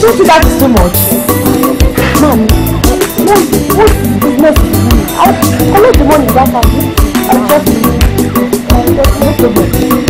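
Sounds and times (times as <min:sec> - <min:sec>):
woman's voice: 0:00.0 - 0:01.1, 0:01.9 - 0:10.0
music with fast percussive beat: 0:00.0 - 0:10.0.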